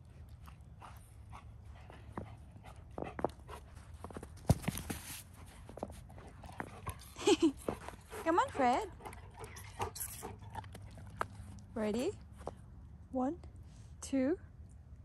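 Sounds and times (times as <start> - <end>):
dog paws crunching in snow: 1.7 - 8.9
dog vocal sound: 6.3 - 11.2.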